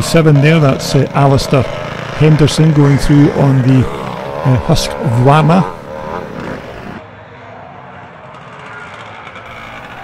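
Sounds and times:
distant motocross engines: 0.0s - 10.0s.

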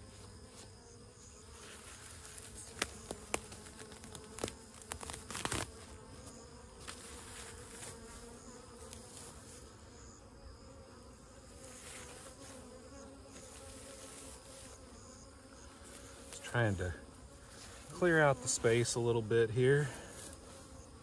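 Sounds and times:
grass rustling: 0.0s - 9.9s, 11.4s - 21.0s
bees buzzing: 0.0s - 21.0s.

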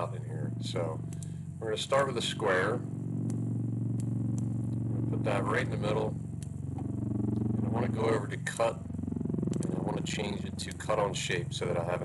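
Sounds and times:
low machine hum: 0.0s - 12.0s
faint clicks: 1.0s - 1.4s, 3.2s - 3.4s, 4.0s - 4.8s, 6.4s - 7.6s, 9.5s - 9.8s, 10.6s - 10.9s.

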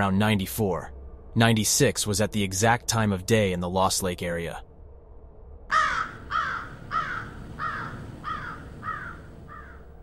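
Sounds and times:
crow cawing: 5.7s - 9.9s.

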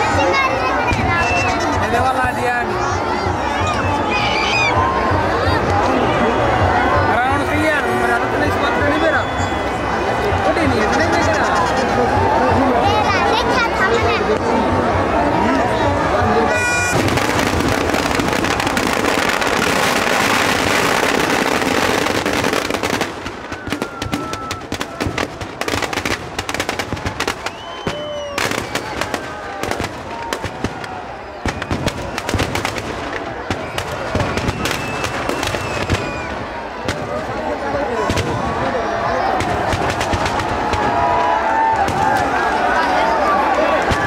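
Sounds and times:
crowd noise: 0.0s - 44.0s
firecrackers bursting: 16.5s - 44.0s.

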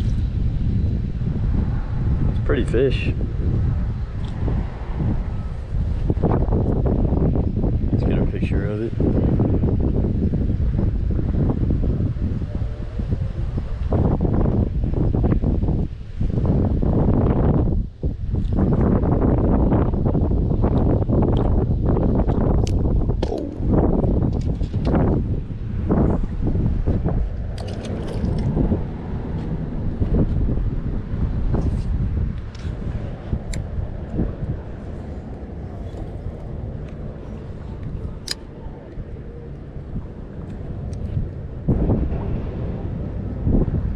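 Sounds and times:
wind buffeting microphone: 0.0s - 43.9s.

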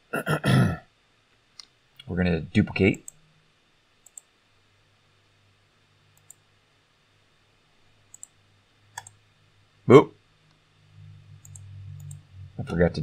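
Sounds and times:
faint low hum: 0.0s - 13.0s
computer mouse clicks: 4.0s - 4.3s, 6.2s - 6.4s, 8.1s - 9.2s, 11.4s - 12.2s.

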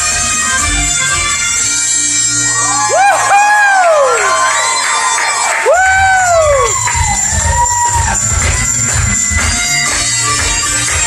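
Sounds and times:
audience whooping and cheering: 2.3s - 10.7s
bagpipes playing a tune: 6.7s - 11.0s.

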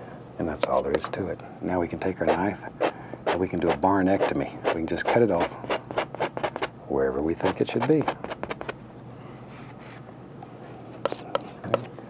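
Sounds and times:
palette knife scraping paint: 2.2s - 6.7s.

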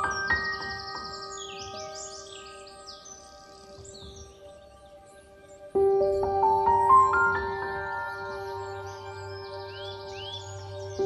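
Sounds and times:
high bird-like chirps: 0.0s - 4.5s
ambient music with bell-like notes: 0.0s - 11.0s.

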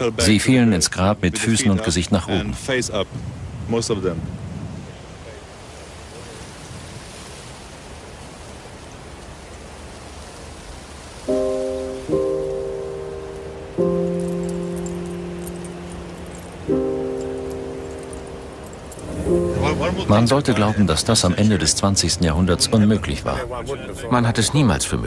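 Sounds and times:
outdoor hiss: 0.0s - 23.9s
sustained music chords: 11.3s - 21.1s.

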